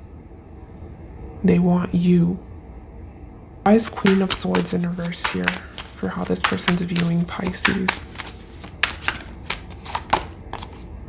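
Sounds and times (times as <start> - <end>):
cards clicking and flicking: 4.0 - 10.8.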